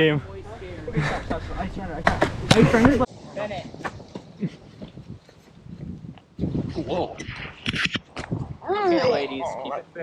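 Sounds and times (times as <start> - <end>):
people scuffling and shuffling: 0.8 - 9.6.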